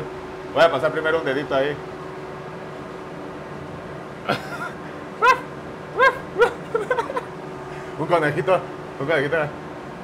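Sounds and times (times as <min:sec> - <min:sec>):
faint steady hum: 0:00.0 - 0:10.0
projector cooling fans whirring: 0:00.0 - 0:10.0.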